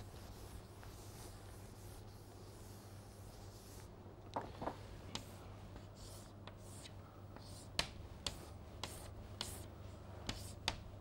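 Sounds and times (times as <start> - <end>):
chalk scraping on chalkboard: 0.0 - 3.9, 5.1 - 10.8
low steady hum: 0.0 - 11.0
chalk tapping on chalkboard: 5.1 - 11.0.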